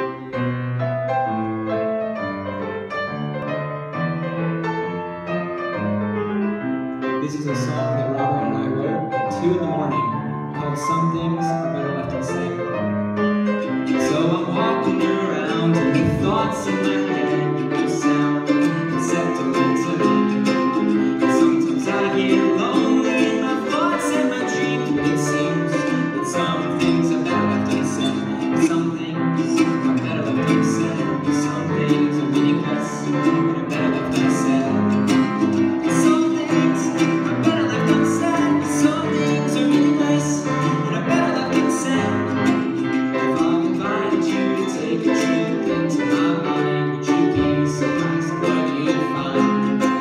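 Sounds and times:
grand piano chords: 0.0s - 50.0s
strummed ukulele: 0.0s - 50.0s.

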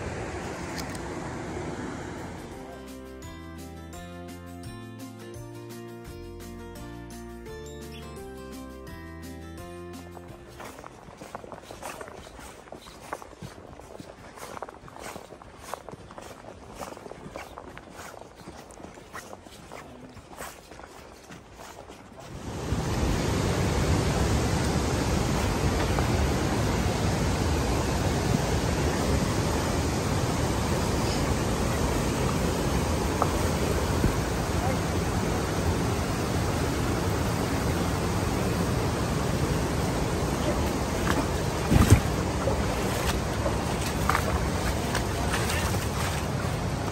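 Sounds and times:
river rapids rushing: 10.2s - 46.9s.

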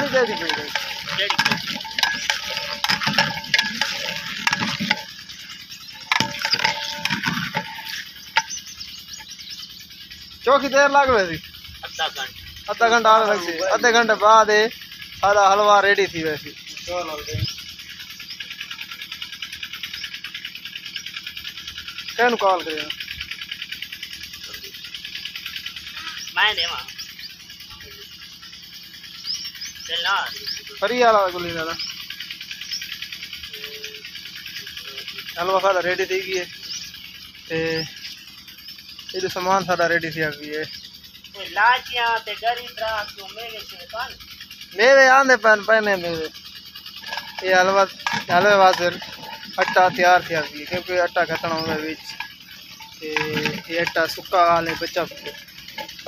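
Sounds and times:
high bird chirps: 0.0s - 56.0s.

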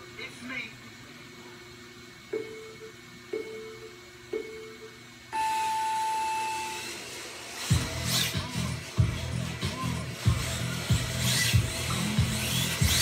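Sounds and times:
short countdown beeps: 2.3s - 6.9s
long high start beep: 2.4s - 7.0s.

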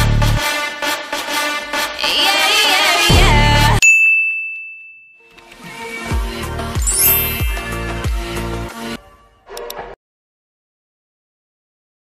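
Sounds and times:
music: 0.0s - 3.8s, 5.3s - 10.0s
bright bell-like ding: 3.8s - 5.4s, 6.8s - 8.2s.

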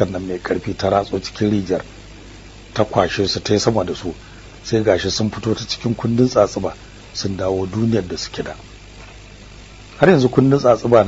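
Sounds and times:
man reading aloud: 0.0s - 1.9s, 2.8s - 8.6s, 10.0s - 11.0s
faint hiss: 0.0s - 11.0s
low hum: 0.0s - 11.0s.

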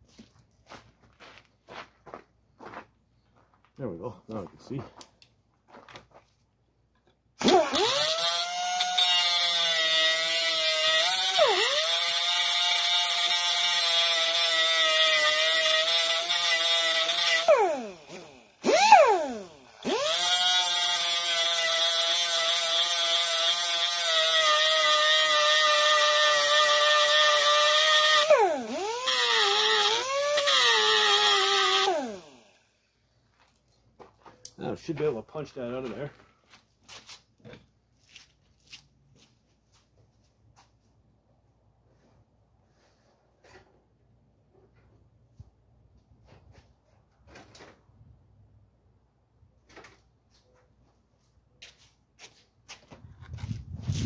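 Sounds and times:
air cut-off tool grinding: 7.4s - 32.8s.

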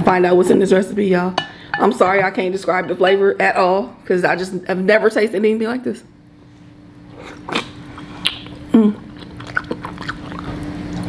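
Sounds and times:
faint steady hum: 0.0s - 11.0s
wet mouth sound of biting: 7.2s - 11.0s.

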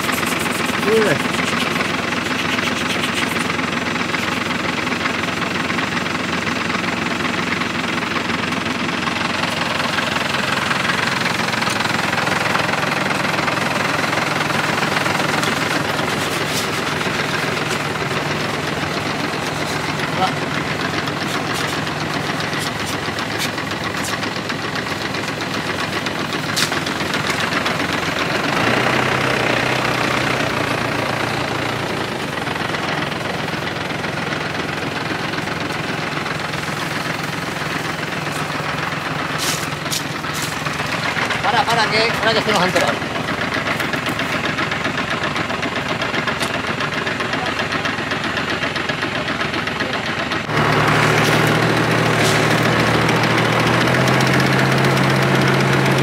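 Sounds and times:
paint spraying hiss: 0.0s - 3.6s
sprayer pump motor running: 0.0s - 56.0s.

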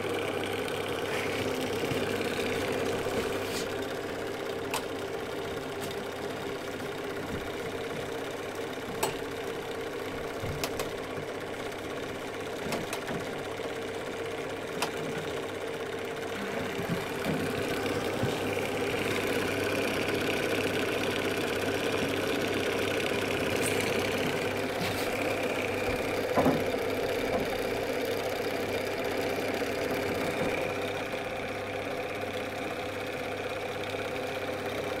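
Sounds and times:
film projector clatter: 0.0s - 35.0s.

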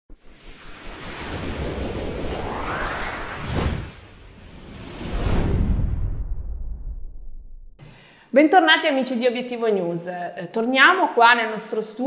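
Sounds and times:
deep rumble: 0.1s - 7.8s
whoosh rushing noise: 0.1s - 7.8s.

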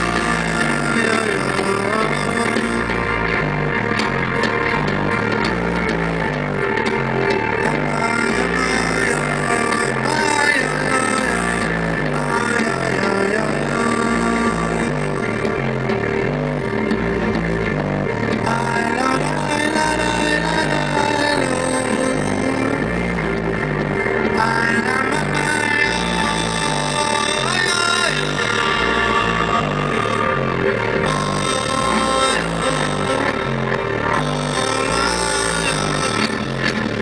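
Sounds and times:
electric guitar: 0.0s - 37.0s
repeating bass line: 0.0s - 37.0s.

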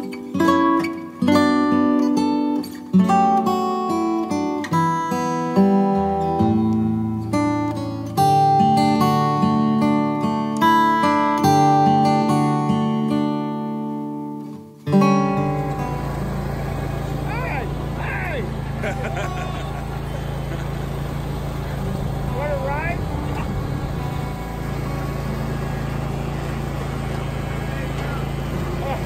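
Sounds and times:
leaf blower engine running: 15.1s - 29.0s
people's voices: 17.1s - 29.0s
person laughing: 18.4s - 20.9s.

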